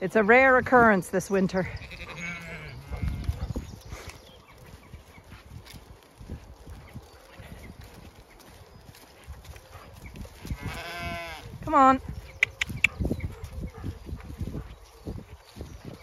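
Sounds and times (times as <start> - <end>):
footsteps on muddy ground: 0.0 - 16.0
sheep bleating: 1.7 - 3.4, 10.6 - 11.5.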